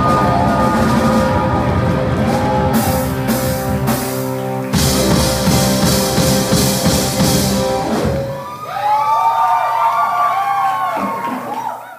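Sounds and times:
live rock band playing: 0.0 - 8.6.

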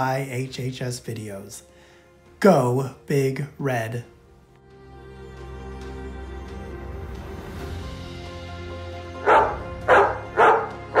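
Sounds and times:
soft background music: 0.0 - 11.0
dog barking: 9.2 - 11.0.

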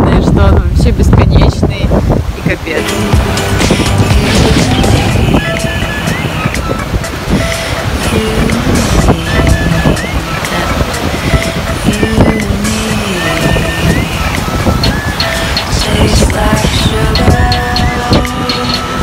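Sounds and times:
background music melody: 2.5 - 19.0.

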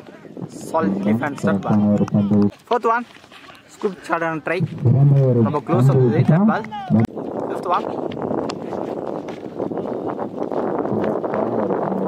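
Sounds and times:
wind buffeting microphone: 0.0 - 2.5, 4.4 - 12.0.

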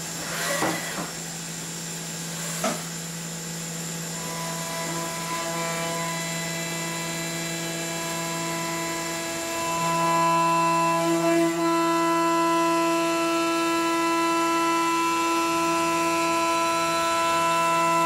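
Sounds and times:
milling cutter whine: 0.0 - 18.0.

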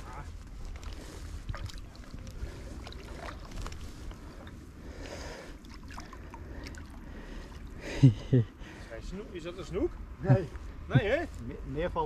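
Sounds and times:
water sloshing and splashing: 0.0 - 8.0.

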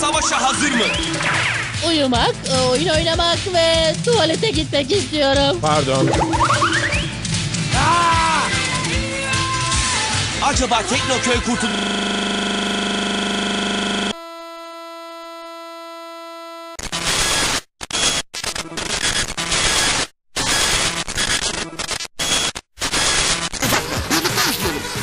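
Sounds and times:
loud electronic buzz: 11.0 - 21.6.

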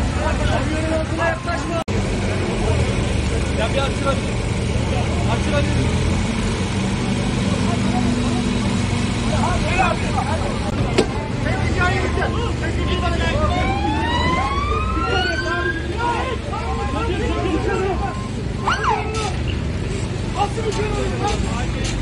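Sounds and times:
crowd voices: 0.0 - 22.0
diesel engine running: 0.0 - 22.0.

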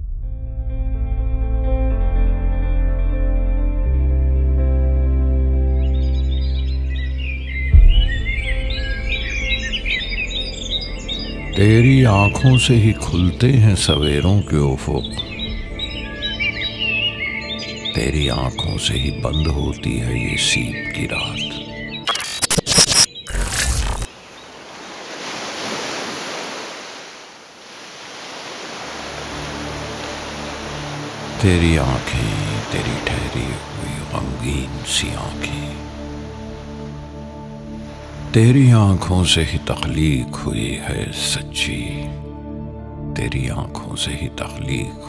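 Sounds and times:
soft ambient music pad: 0.0 - 24.0, 28.8 - 45.0
birds chirping: 5.6 - 26.8, 28.3 - 42.2
deep low thump: 7.7 - 9.4
ocean surf washing on beach: 24.1 - 35.0.

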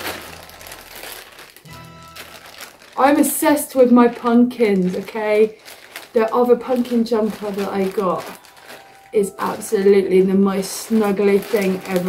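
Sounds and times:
plastic bag crinkling: 0.0 - 12.0
quiet background music: 0.0 - 12.0.

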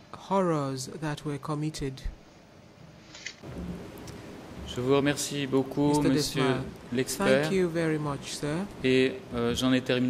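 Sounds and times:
low even hiss: 3.0 - 10.0.

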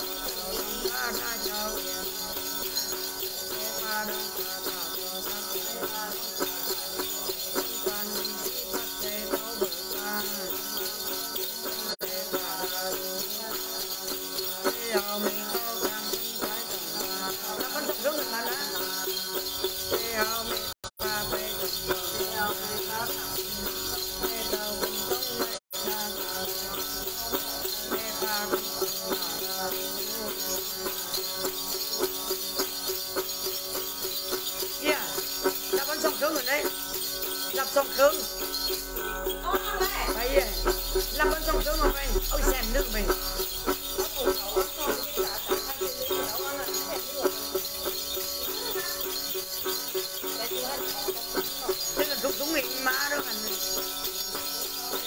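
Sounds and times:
small jingle bells shaken: 0.0 - 55.0.

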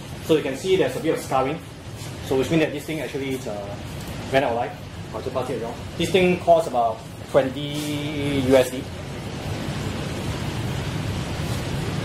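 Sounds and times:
hiss: 7.6 - 8.8, 11.3 - 12.0.

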